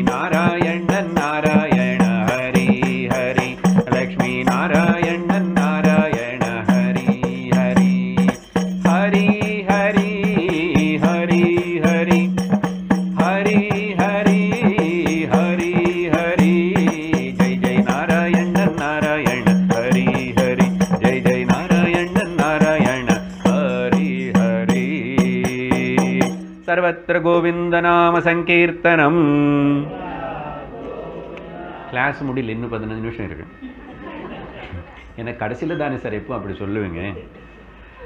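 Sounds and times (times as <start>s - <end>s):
hand percussion beats: 0.0s - 26.8s
man singing a chant: 0.0s - 29.9s.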